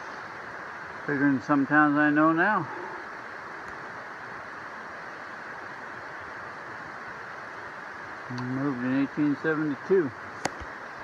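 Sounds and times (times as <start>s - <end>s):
steady rushing noise: 0.0s - 11.0s.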